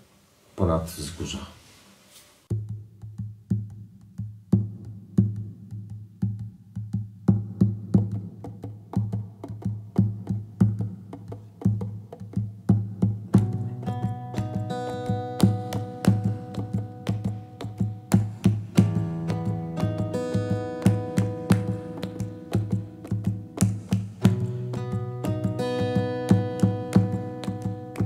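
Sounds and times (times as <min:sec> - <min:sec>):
acoustic guitar playing: 0:07.6 - 0:28.0.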